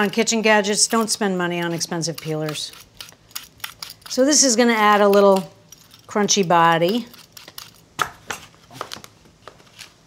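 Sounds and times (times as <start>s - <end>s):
knife scraping an apple: 0.0s - 7.9s.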